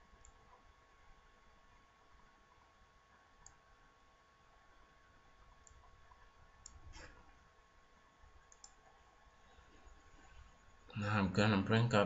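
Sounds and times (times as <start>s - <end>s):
computer mouse clicks: 0.2s - 0.6s, 3.4s - 3.6s, 5.6s - 7.2s, 8.4s - 9.0s.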